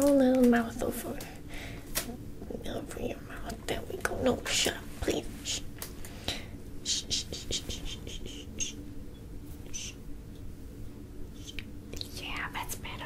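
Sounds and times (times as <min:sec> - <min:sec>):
soft whispering: 0:02.4 - 0:05.7, 0:06.8 - 0:08.8, 0:09.6 - 0:10.0, 0:11.3 - 0:13.0.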